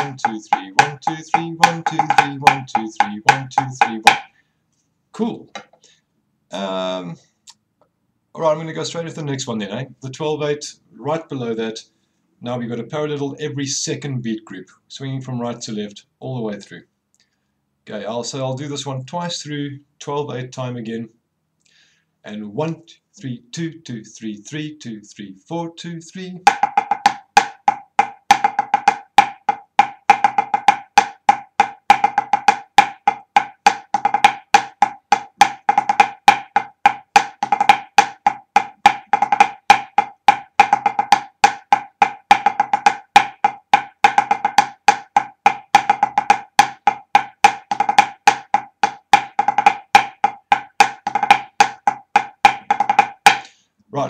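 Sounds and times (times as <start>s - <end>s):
snare drum strokes: 0.0s - 4.3s.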